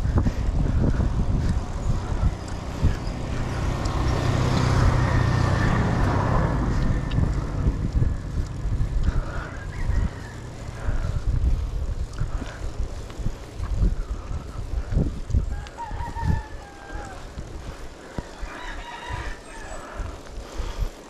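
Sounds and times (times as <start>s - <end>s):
motor vehicles passing: 0.0s - 21.0s
wind noise on microphone: 0.0s - 21.0s.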